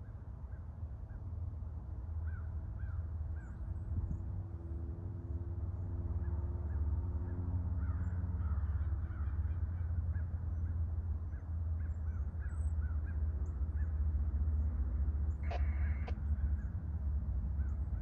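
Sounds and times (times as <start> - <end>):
low steady rumble: 0.0 - 18.0
birds calling: 7.8 - 14.0, 15.3 - 16.8, 17.5 - 18.0.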